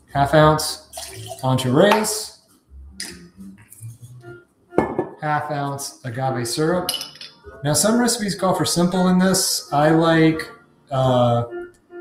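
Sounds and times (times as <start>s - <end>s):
faint background music: 0.0s - 12.0s
glass bottles clinking: 0.9s - 2.1s, 4.8s - 5.2s, 6.8s - 7.4s.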